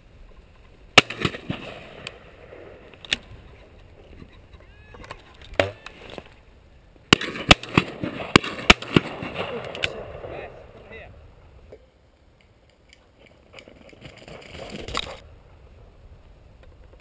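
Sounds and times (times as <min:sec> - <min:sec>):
shotgun shots: 0:01.0 - 0:03.2, 0:07.1 - 0:10.6.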